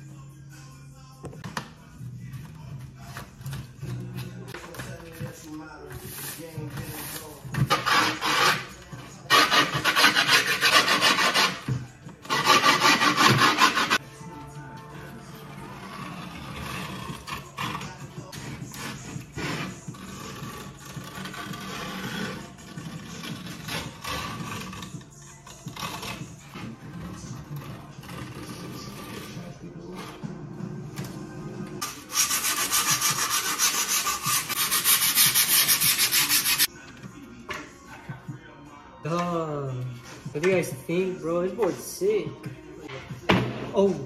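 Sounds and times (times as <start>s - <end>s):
blade scraping griptape: 2.8s - 14.0s, 31.8s - 36.7s.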